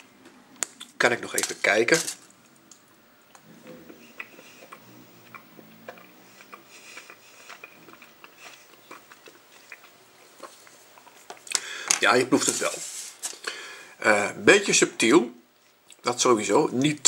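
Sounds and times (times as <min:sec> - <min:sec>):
faint chewing: 0:02.3 - 0:13.6.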